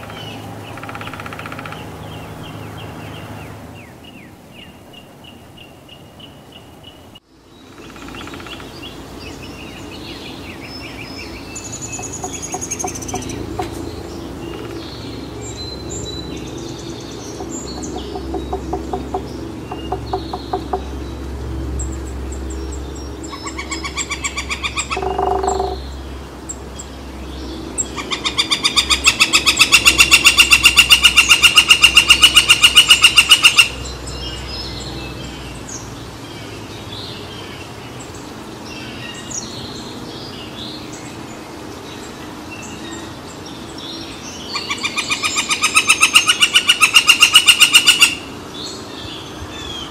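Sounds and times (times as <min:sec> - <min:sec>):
woodpecker drumming: 0:00.0 - 0:02.4, 0:07.7 - 0:08.9, 0:11.6 - 0:16.1, 0:16.7 - 0:21.1, 0:23.3 - 0:26.0, 0:27.9 - 0:33.9, 0:44.6 - 0:48.2
small birds chirping: 0:00.0 - 0:49.9.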